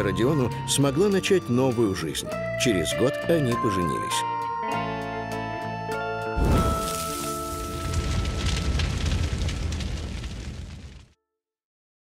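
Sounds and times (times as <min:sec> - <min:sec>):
rumbling crackling boom: 0:06.4 - 0:11.2.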